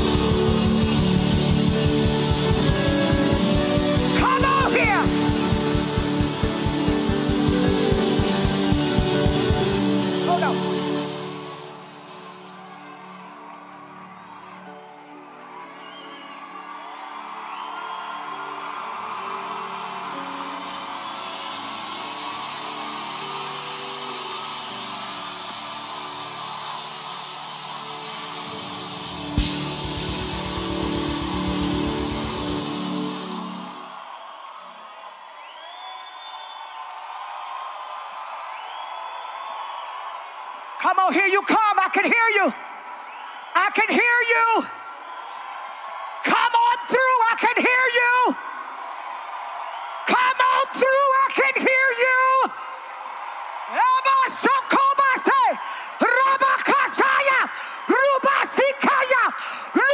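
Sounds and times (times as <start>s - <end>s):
drum roll: 0.0s - 9.9s, 29.4s - 33.4s
sustained keyboard chords: 0.0s - 10.3s
congregation shouting and whooping: 0.0s - 59.9s
cymbal crash: 29.2s - 33.7s.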